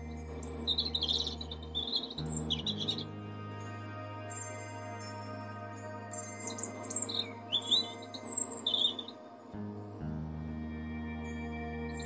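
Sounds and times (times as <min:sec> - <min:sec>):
robin singing: 0:00.0 - 0:10.3
background music with sustained chords: 0:00.0 - 0:12.0.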